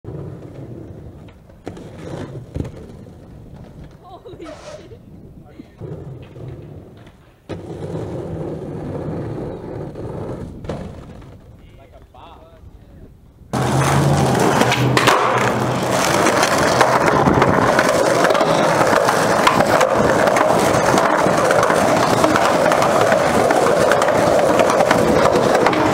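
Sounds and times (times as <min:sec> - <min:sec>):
skateboard wheels rolling on roof: 0:00.0 - 0:12.8, 0:13.5 - 0:25.9.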